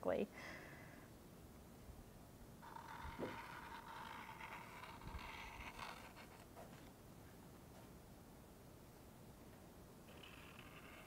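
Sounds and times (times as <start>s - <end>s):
pen scratching on wood: 2.6s - 6.9s, 10.1s - 11.0s.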